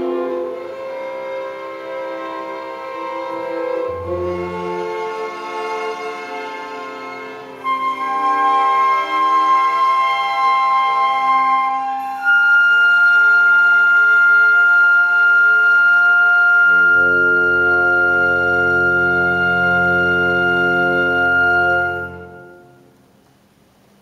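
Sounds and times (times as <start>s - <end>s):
low strings: 0.0s - 8.8s
orchestra holding sustained chord: 0.0s - 22.8s.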